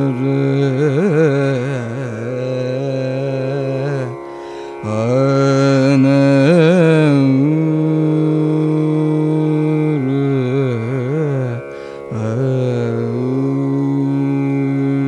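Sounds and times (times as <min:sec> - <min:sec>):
man singing ornamented phrases: 0:00.0 - 0:15.0.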